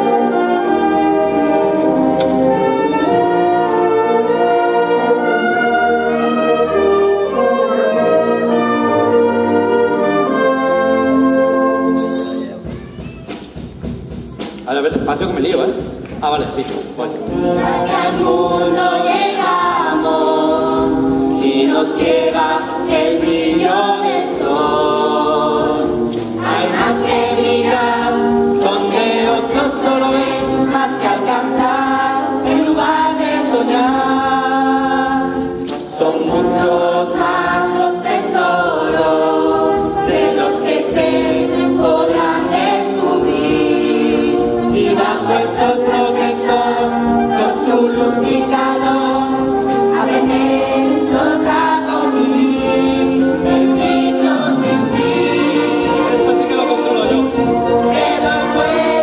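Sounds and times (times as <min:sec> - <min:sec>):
children's choir singing: 0:00.0 - 0:13.4, 0:17.2 - 0:59.0.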